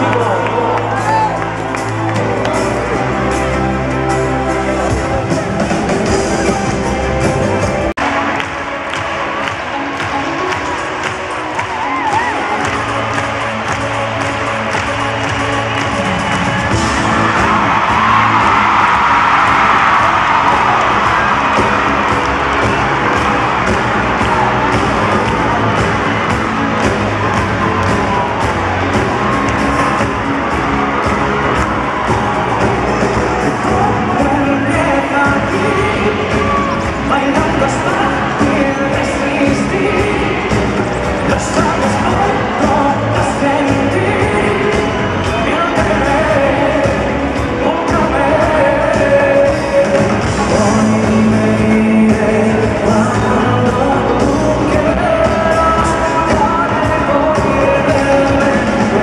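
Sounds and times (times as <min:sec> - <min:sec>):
crowd cheering and screaming: 0:00.0 - 0:59.0
live pop band playing: 0:00.0 - 0:59.0
steady drum beat: 0:01.0 - 0:59.0
man singing: 0:32.6 - 0:59.0.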